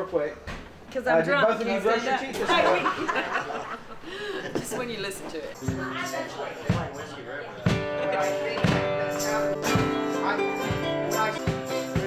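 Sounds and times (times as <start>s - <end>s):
ukulele and guitar strumming: 7.6s - 12.0s.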